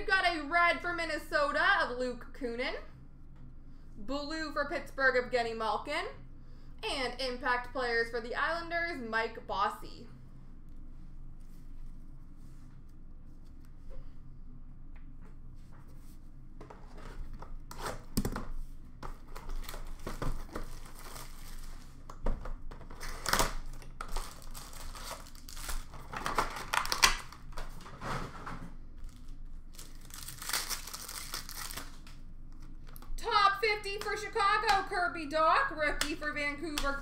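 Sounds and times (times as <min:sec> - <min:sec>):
wrappers crinkling and tearing: 0:19.3 - 0:22.1, 0:22.8 - 0:27.7, 0:29.0 - 0:33.2.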